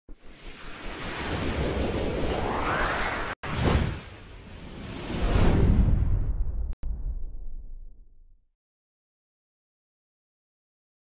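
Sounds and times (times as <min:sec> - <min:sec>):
rushing whoosh: 0:00.2 - 0:06.5
rising sweep: 0:00.2 - 0:06.6.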